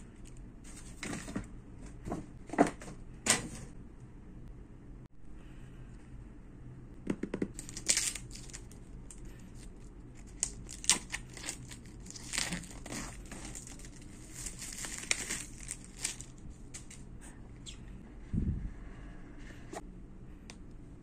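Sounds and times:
plastic shrink-wrap crinkling: 0:09.6 - 0:17.0.

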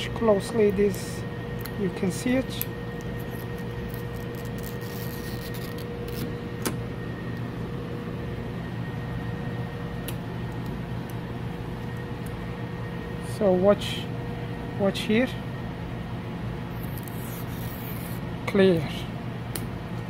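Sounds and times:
electrical hum with faint tones: 0:00.0 - 0:20.0.

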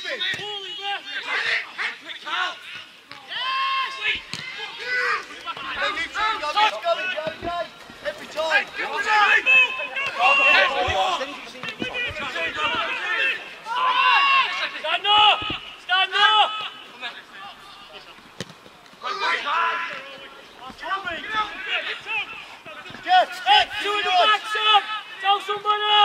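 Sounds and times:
men shouting calls: 0:03.3 - 0:17.9, 0:19.0 - 0:26.0.

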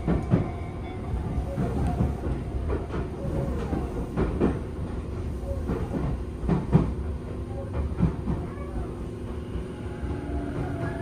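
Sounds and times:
train low rumble: 0:00.0 - 0:11.0.

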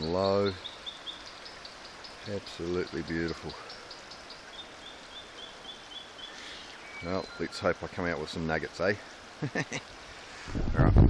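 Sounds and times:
bird chirping: 0:00.0 - 0:08.1.

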